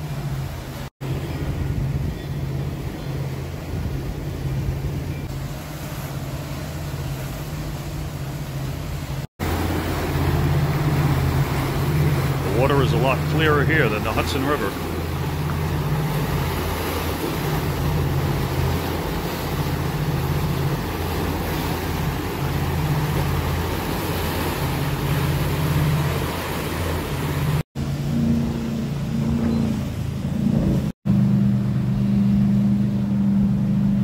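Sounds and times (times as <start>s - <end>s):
churning wake water: 0.0s - 34.0s
motorboat engine running: 0.0s - 34.0s
wind: 0.0s - 34.0s.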